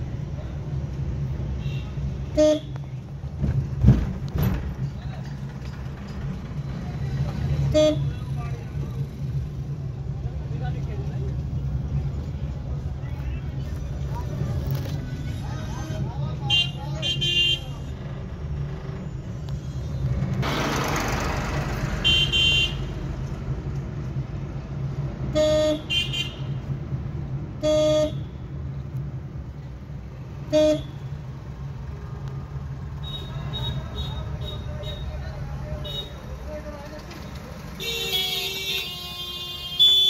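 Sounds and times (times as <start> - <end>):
road noise rush: 0.0 - 40.0
car horns honking: 1.6 - 2.9, 7.6 - 8.3, 16.4 - 17.9, 22.0 - 23.0, 25.3 - 26.7, 27.5 - 28.5, 30.4 - 31.2, 33.0 - 35.2, 37.7 - 40.0.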